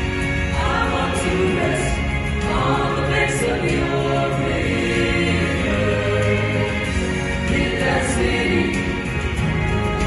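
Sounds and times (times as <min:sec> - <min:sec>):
vocal group singing in harmony: 0:00.0 - 0:10.0.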